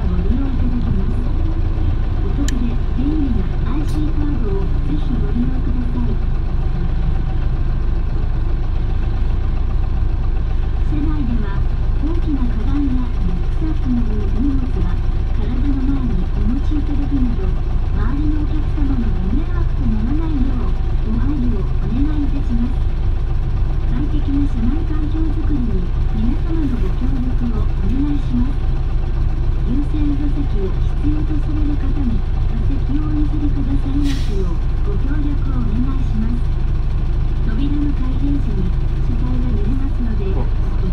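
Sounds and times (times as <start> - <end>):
people talking: 0.0 - 6.3, 10.8 - 22.9, 23.8 - 28.6, 29.6 - 36.6, 37.4 - 40.9
bus engine and road drone: 0.0 - 40.9.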